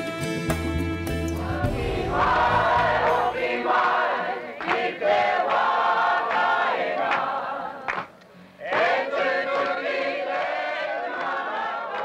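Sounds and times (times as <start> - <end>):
low bass accompaniment: 0.5 - 3.6
choir singing: 1.2 - 12.0.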